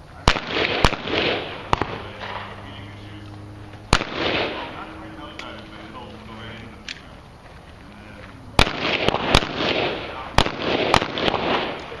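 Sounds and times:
handgun shots with echo: 0.3 - 2.5, 3.9 - 4.8, 8.6 - 12.0
faint sharp cracks: 6.8 - 12.0.

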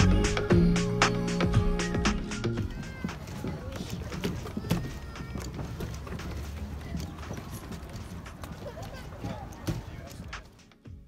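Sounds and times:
passersby voices: 0.0 - 11.0
footsteps on wooden planks: 1.9 - 11.0.

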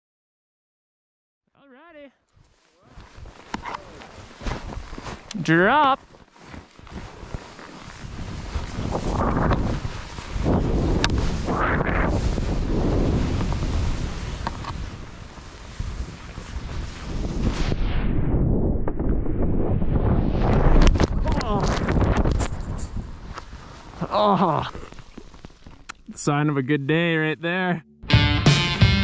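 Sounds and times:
skis through deep powder: 2.4 - 25.6
wind buffeting microphone: 6.8 - 24.0.

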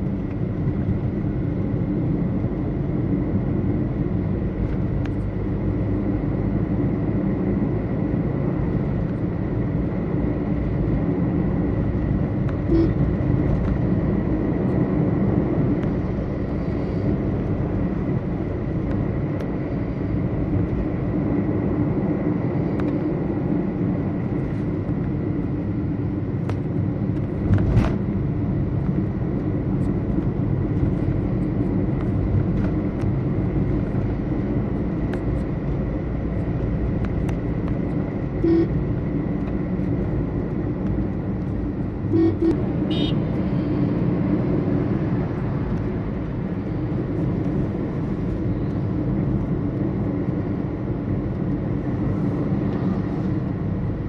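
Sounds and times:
road and engine noise in car: 0.0 - 54.0
vehicle horn toots: 12.7 - 13.0, 38.4 - 38.8, 42.1 - 43.3.

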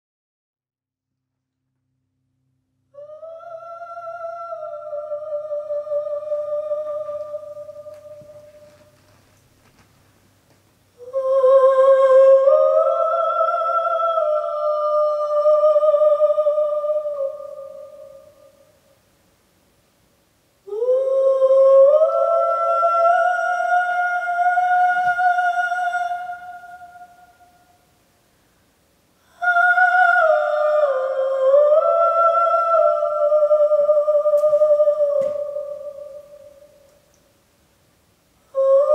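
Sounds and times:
woman singing long held notes: 3.0 - 9.2, 10.9 - 19.0, 20.6 - 27.8, 29.2 - 37.1, 38.4 - 38.9.

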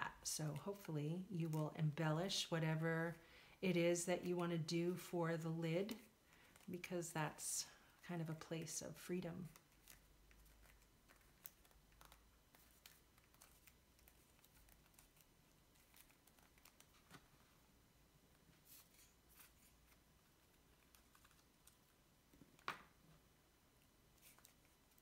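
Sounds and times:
paper rustling: 9.4 - 17.6, 18.5 - 21.9, 24.1 - 25.0.

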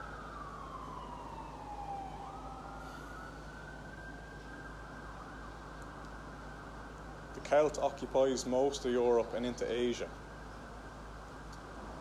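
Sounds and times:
constant low hum: 0.0 - 12.0.

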